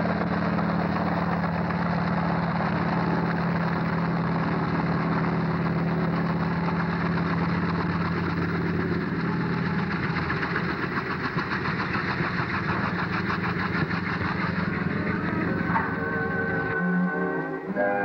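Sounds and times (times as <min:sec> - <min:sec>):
helicopter engine humming: 0:00.0 - 0:17.8.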